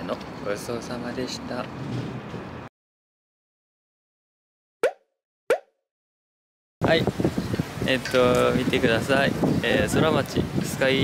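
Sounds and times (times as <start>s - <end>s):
cartoon pop sound effects: 4.8s - 5.8s.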